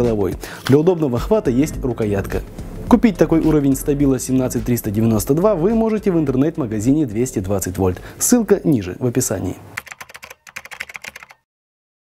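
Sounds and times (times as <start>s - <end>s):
keyboard key clicks: 9.8s - 11.4s.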